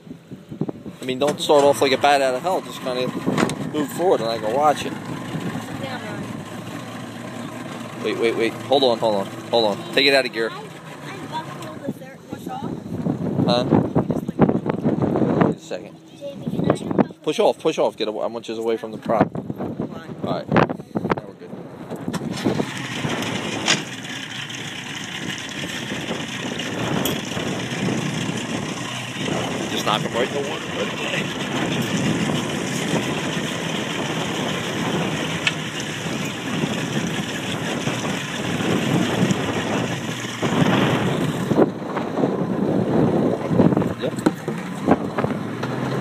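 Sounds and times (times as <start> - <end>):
motorboat engine idling: 0.0 - 46.0
wind: 0.0 - 46.0
water wash: 0.9 - 14.6, 22.1 - 46.0.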